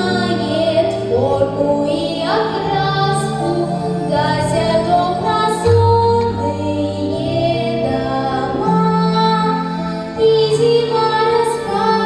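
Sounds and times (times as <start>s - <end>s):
girl singing into microphone: 0.0s - 12.0s
musical accompaniment: 0.0s - 12.0s.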